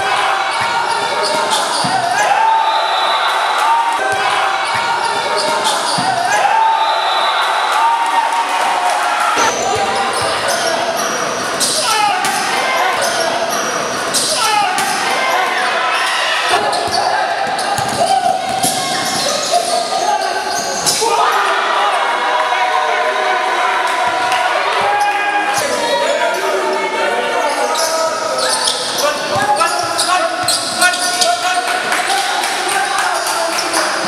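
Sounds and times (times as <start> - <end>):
players calling out: 0.0 - 34.0
basketball bouncing on court: 4.1 - 6.3, 16.6 - 19.2.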